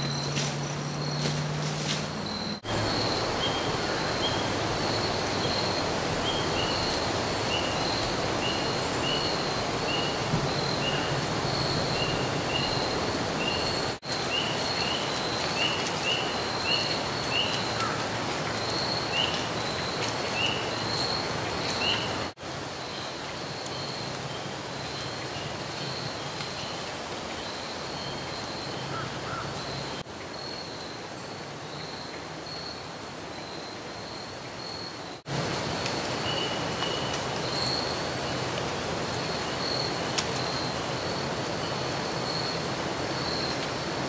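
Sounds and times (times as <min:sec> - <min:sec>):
pulsing insect trill: 0:00.0 - 0:26.4, 0:33.4 - 0:44.0.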